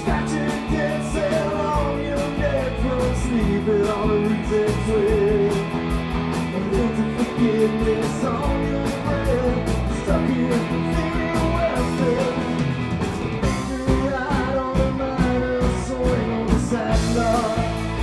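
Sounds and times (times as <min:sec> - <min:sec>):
man singing: 0:00.0 - 0:05.8, 0:06.4 - 0:12.7, 0:13.4 - 0:18.0
drum beat with cymbal hits: 0:00.0 - 0:18.0
electric guitar: 0:00.0 - 0:18.0.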